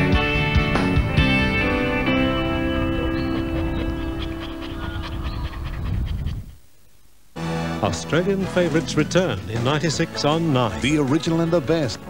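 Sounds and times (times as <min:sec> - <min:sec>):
guitar music: 0:00.0 - 0:04.8
dog panting: 0:02.2 - 0:06.6.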